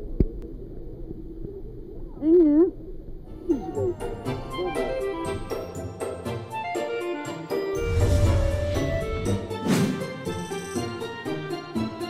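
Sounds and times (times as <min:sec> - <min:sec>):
muffled underwater rumble: 0:00.0 - 0:03.8.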